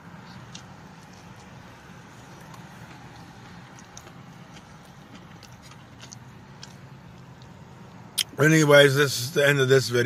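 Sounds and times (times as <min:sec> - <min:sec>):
low hum inside car cabin: 0:00.0 - 0:10.0
mouth clicks from chewing: 0:00.2 - 0:01.6, 0:02.2 - 0:08.3.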